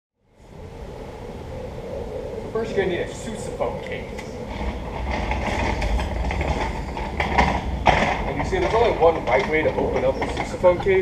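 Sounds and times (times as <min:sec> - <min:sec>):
outdoor background rumble: 0:00.4 - 0:11.0.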